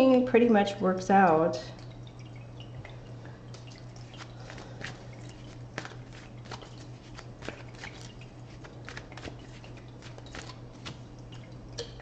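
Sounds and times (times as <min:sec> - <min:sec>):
water drips: 0:00.0 - 0:12.0
water fountain trickling: 0:00.0 - 0:12.0.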